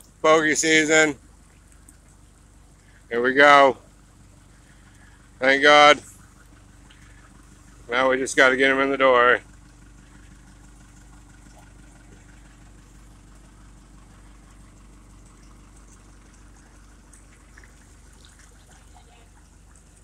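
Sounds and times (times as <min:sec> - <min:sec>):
water trickling and splashing: 0:00.0 - 0:03.1, 0:03.8 - 0:08.5, 0:09.4 - 0:20.0
boat engine idling: 0:00.0 - 0:20.0.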